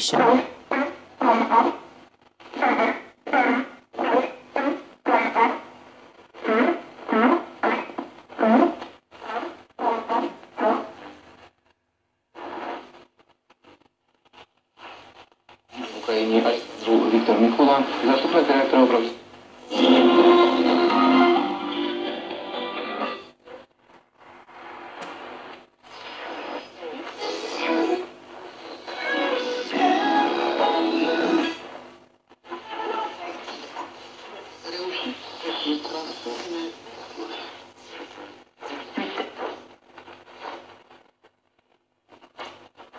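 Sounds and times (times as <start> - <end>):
radio music: 0.0 - 11.7, 12.4 - 42.9
radio speech: 15.7 - 19.2, 32.5 - 39.6
short-wave radio voice: 15.8 - 19.2.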